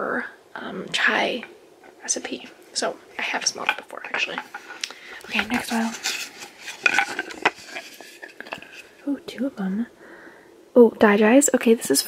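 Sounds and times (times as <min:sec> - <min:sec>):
packing rustling: 0:04.4 - 0:09.0.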